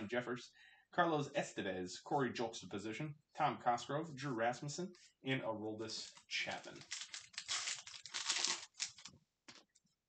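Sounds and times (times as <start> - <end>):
wrapper tearing and crinkling: 6.6 - 9.1.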